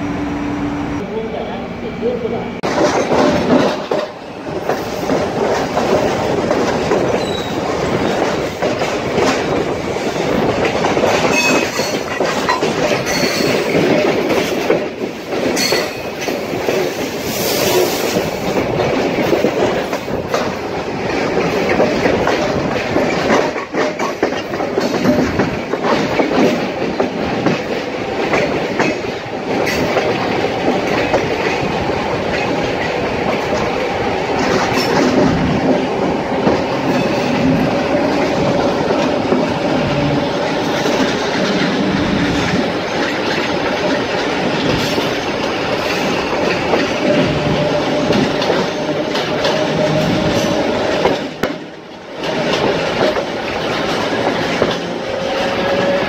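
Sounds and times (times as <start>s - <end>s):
train wheels rumbling on rails: 0.0s - 56.0s
train clickety-clack over joints: 2.5s - 56.0s
wheel squeal: 7.1s - 7.6s.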